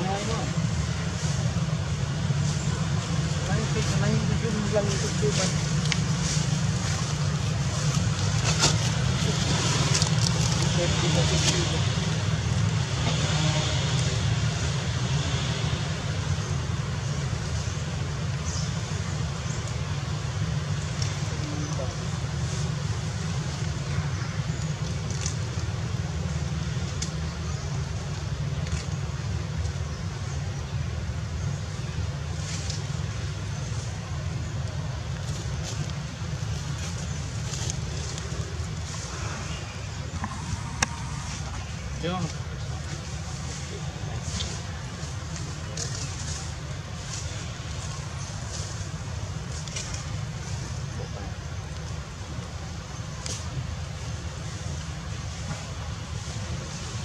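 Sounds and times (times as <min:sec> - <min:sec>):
low rumble and hiss outdoors: 0:00.0 - 0:57.0.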